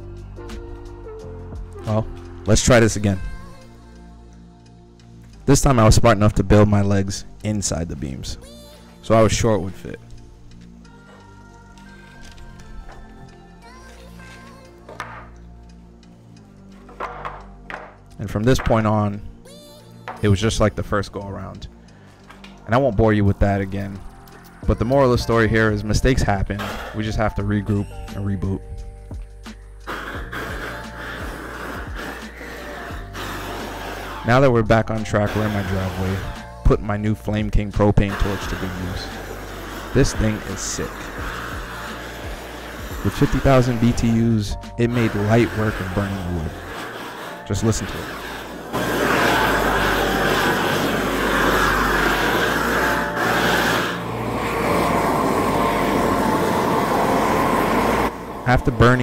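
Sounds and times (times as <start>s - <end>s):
background music: 0.0s - 59.0s
propane torch roaring: 29.2s - 34.4s, 35.0s - 36.9s, 37.8s - 59.0s.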